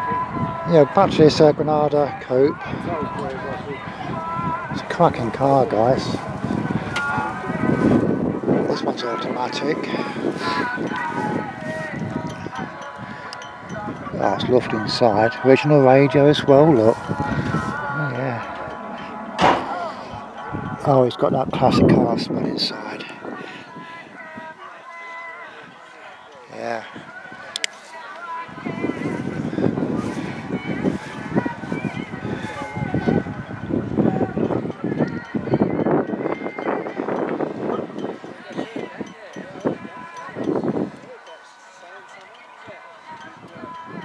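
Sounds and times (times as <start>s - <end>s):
people chattering: 0.0s - 44.0s
voices: 0.0s - 44.0s
short sharp knock: 19.4s - 19.7s.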